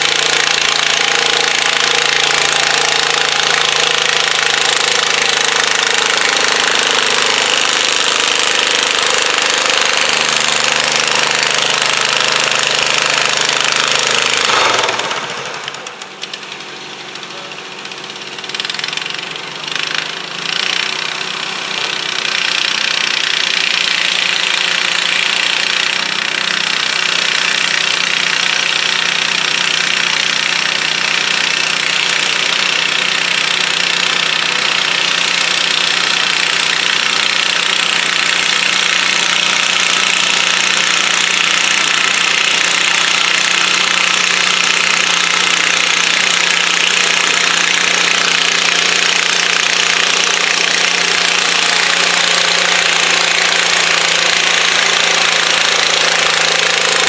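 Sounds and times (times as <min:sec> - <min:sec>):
garden tractor engines running: 0:00.0 - 0:57.0
tractor engine under load: 0:00.0 - 0:57.0.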